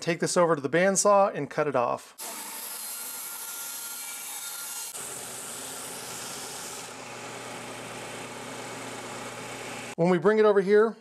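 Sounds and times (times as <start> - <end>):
bandsaw cutting wood: 2.2 - 10.0
belt sander running: 4.9 - 10.0.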